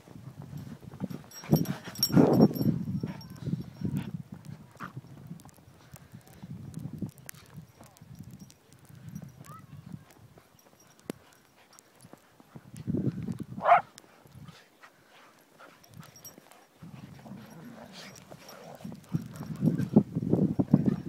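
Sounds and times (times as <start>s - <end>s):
dog paws thudding on snow: 7.0s - 21.0s.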